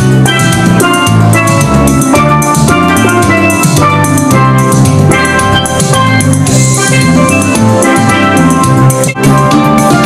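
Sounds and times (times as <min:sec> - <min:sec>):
steelpan melody: 0:00.0 - 0:10.0.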